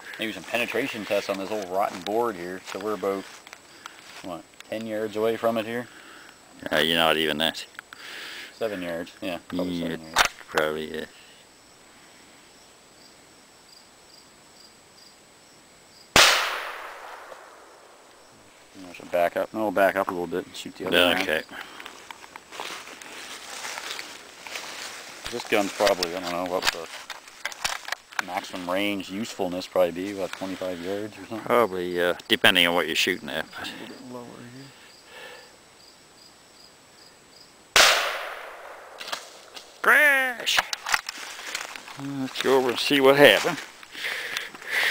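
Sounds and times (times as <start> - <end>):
shotgun shot: 16.1 - 17.8, 37.8 - 39.3
man exclaiming: 39.8 - 40.7.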